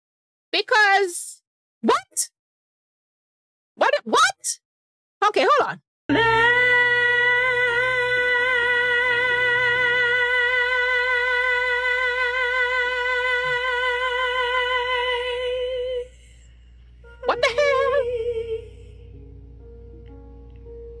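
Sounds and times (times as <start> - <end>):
woman singing a sustained high note: 6.1 - 16.4, 17.0 - 19.2.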